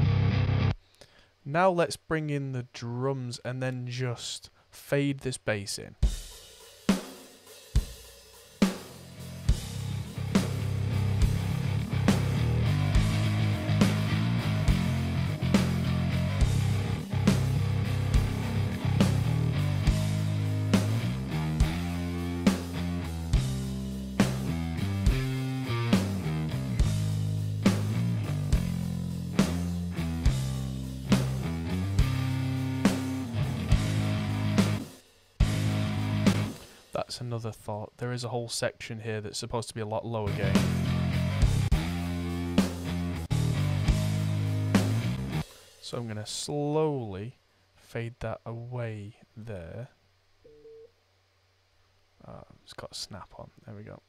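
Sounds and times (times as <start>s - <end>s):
distorted bass guitar: 0.0s - 0.8s, 9.1s - 36.6s, 40.2s - 45.5s
drum kit steady beat: 5.9s - 37.3s, 40.3s - 46.2s.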